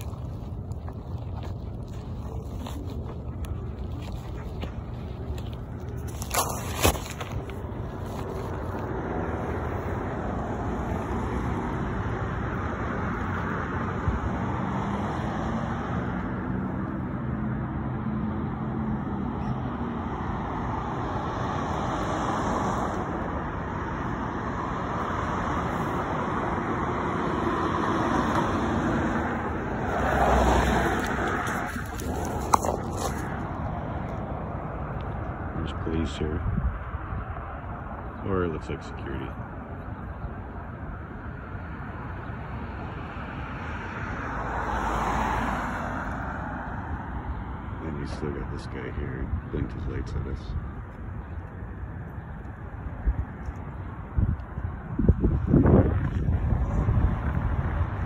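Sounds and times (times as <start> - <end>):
low engine hum: 0.0 - 58.0
road traffic passing: 0.0 - 58.0.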